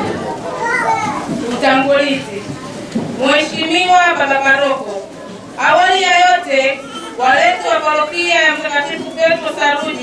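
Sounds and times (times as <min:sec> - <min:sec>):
children's voices: 0:00.0 - 0:10.0
speech through loudspeaker: 0:00.0 - 0:10.0.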